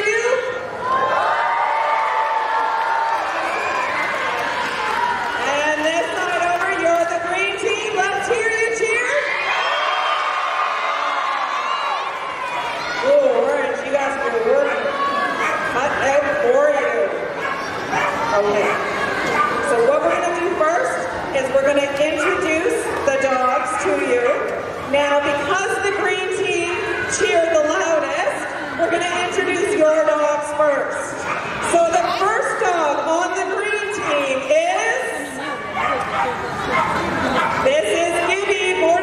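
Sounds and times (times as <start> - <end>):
people's voices: 12.4 - 39.0
dog barking: 14.6 - 15.7, 17.4 - 20.4, 31.2 - 31.5, 35.7 - 37.7.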